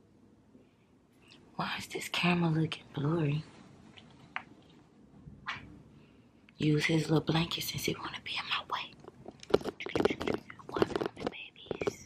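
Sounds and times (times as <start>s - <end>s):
small taps and clicks: 9.0s - 12.0s.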